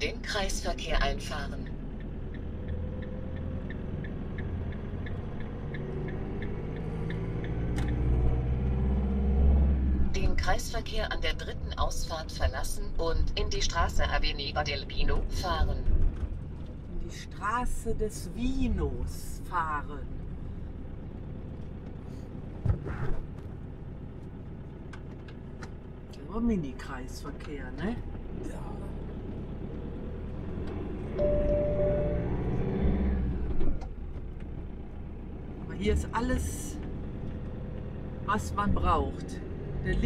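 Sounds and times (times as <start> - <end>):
van engine and road rumble: 0.0 - 40.0
turn signal ticking: 1.5 - 8.8, 30.6 - 32.4
short thumps: 22.6 - 23.6.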